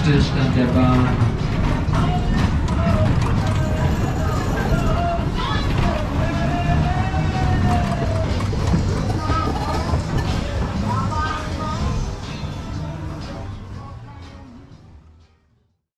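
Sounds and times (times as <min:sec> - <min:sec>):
low rumble of ride rolling: 0:00.0 - 0:14.9
ride music with singing: 0:00.0 - 0:15.4.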